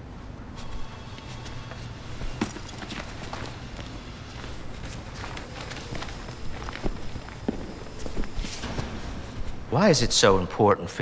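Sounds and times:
footsteps on office floor: 0.6s - 10.2s.

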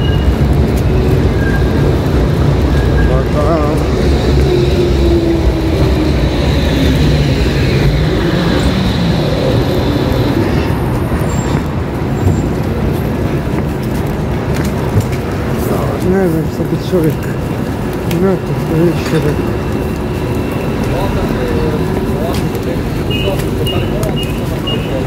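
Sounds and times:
vehicle passing close by: 0.4s - 13.4s.

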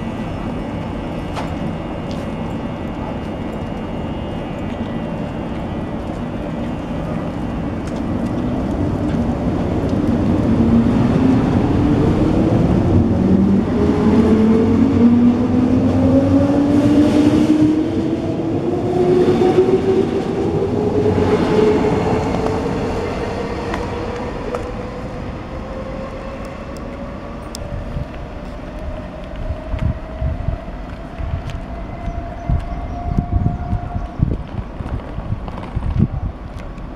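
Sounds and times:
train wheels rumbling on rails: 0.0s - 36.9s.

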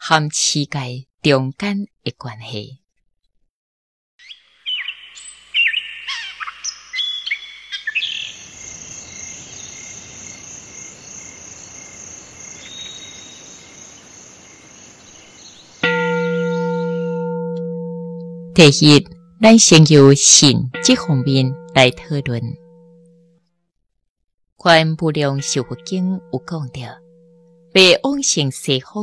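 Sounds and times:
birds chirping: 4.2s - 19.3s
outdoor ambience hiss: 4.3s - 15.8s
bell ringing: 15.8s - 23.2s, 25.2s - 27.8s.

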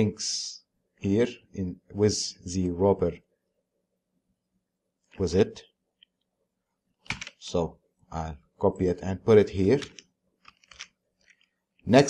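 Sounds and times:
man speaking: 0.0s - 3.2s, 5.2s - 5.6s, 7.3s - 10.0s.

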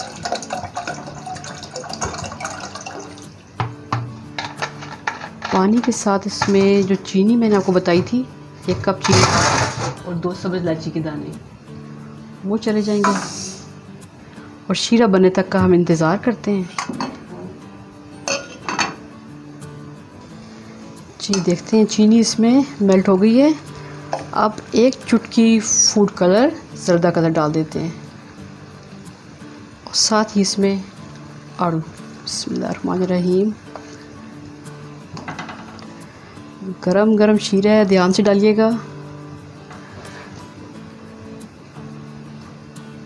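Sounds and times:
water pouring into a saucepan: 0.0s - 3.4s
glass lid clinking on saucepan: 18.3s - 19.0s.

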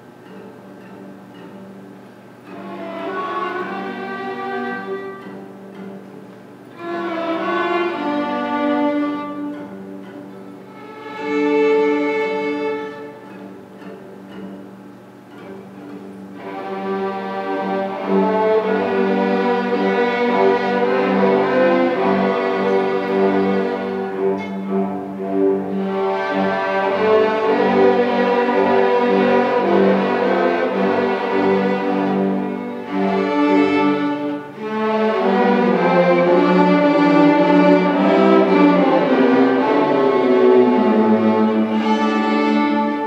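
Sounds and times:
string orchestra playing softly: 0.0s - 43.0s.

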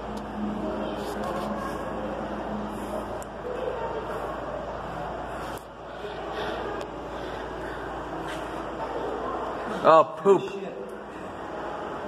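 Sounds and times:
aquarium background noise: 0.0s - 12.0s
faint murmur of distant voices: 0.0s - 12.0s.

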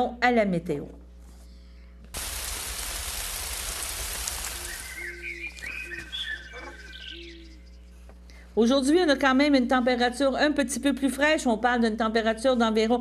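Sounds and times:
rain-like hiss: 2.1s - 5.8s
bird chirps and whistles: 4.5s - 7.6s.

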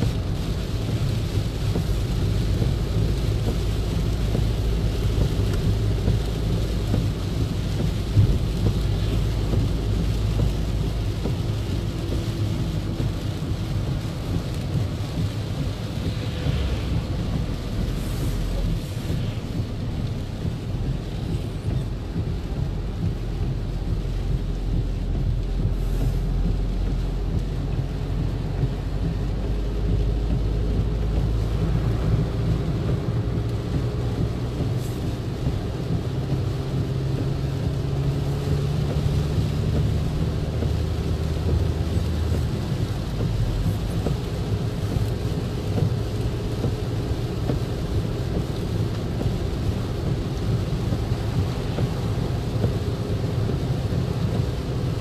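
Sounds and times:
engine and tyres rumbling: 0.0s - 55.0s
rain on car: 0.0s - 55.0s
tyre spray hiss: 1.0s - 22.0s, 25.6s - 26.8s.

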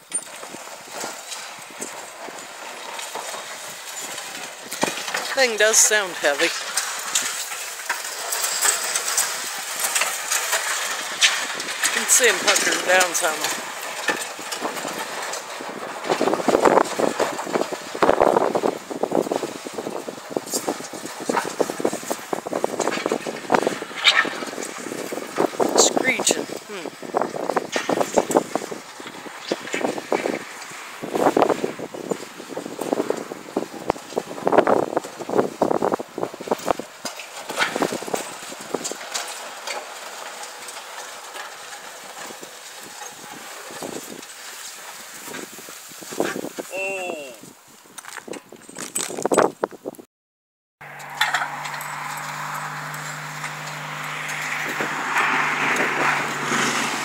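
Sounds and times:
indistinct voices talking: 5.3s - 6.6s, 12.0s - 13.6s.

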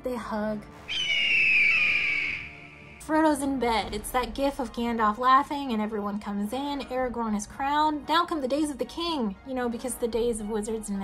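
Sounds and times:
person whistling long note: 0.9s - 3.0s.

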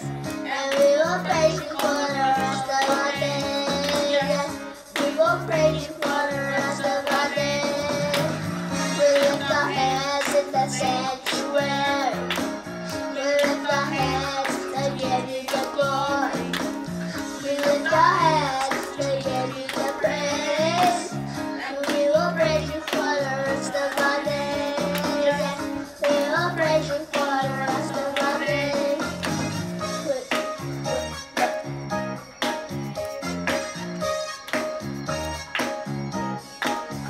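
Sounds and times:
instrumental backing track: 0.0s - 37.0s.

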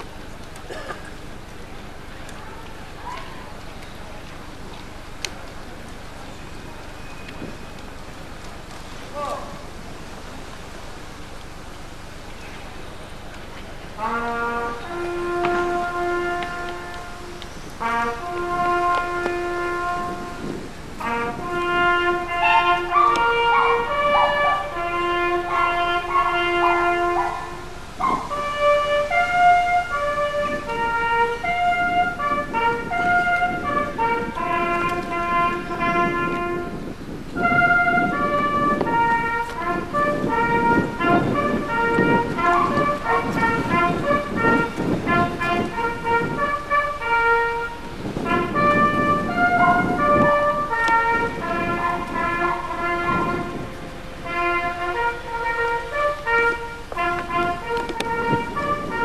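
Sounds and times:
rough low background noise: 0.0s - 59.0s
brass band playing slowly: 13.1s - 59.0s.

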